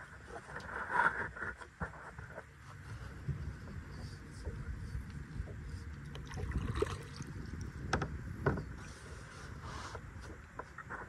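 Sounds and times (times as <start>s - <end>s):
kayak paddle splashing water: 6.1s - 7.8s.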